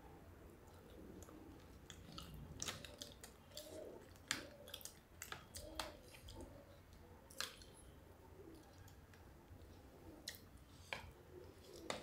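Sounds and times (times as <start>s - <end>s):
soft chewing: 0.5s - 12.0s.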